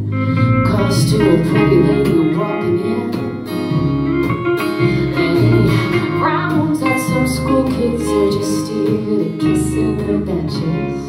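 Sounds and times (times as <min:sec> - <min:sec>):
country band playing: 0:00.0 - 0:11.0
electric guitar: 0:00.0 - 0:11.0
strummed acoustic guitar: 0:00.0 - 0:11.0
upright bass: 0:00.0 - 0:11.0.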